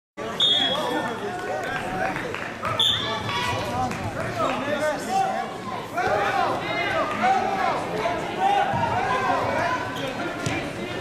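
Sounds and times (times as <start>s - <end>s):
spectators and coaches chattering: 0.2s - 11.0s.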